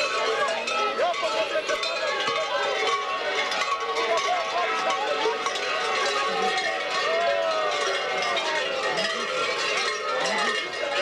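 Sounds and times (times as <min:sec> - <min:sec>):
crowd voices: 0:00.0 - 0:11.0
large bells clanging: 0:00.0 - 0:11.0.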